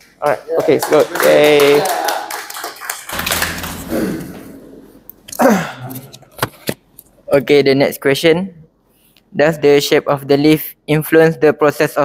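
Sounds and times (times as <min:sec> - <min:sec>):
people clapping: 0:00.2 - 0:04.5.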